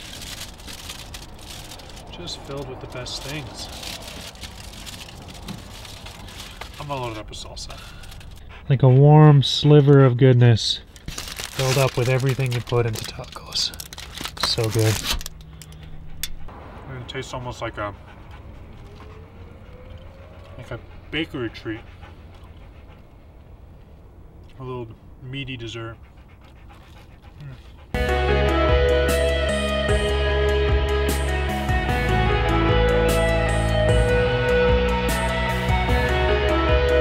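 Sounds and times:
wind rumbling on microphone: 0.0 - 6.8
crackling noise: 0.0 - 8.5, 10.9 - 15.8
dog whining: 18.1 - 23.7.

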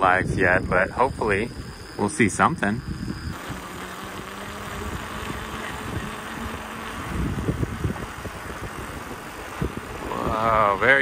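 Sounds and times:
wind on microphone: 0.0 - 11.0
bicycle rolling on wet asphalt: 3.3 - 10.2.

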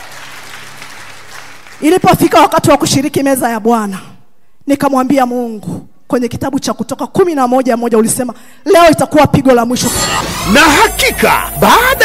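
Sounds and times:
crowd applauding: 0.0 - 1.8.

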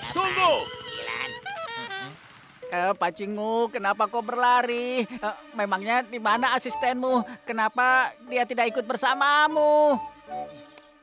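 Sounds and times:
loud shout: 0.0 - 1.3
background music: 2.6 - 11.0.

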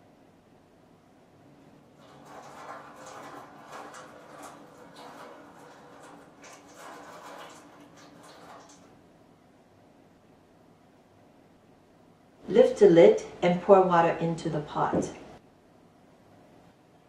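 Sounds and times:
water pouring from teapot spout: 1.9 - 9.0
water splashing onto tray: 1.9 - 9.0.

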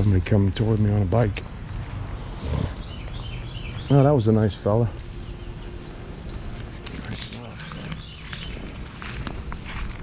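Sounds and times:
outdoor street background: 0.0 - 10.0
songbird chirping: 0.0 - 10.0.

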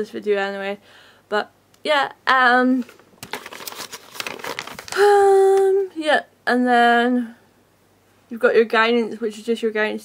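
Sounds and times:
sheet crinkling and rustling: 2.8 - 5.8.

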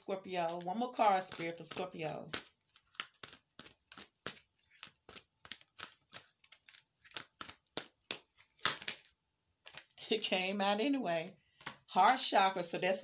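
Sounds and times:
cards being shuffled: 0.2 - 10.0.

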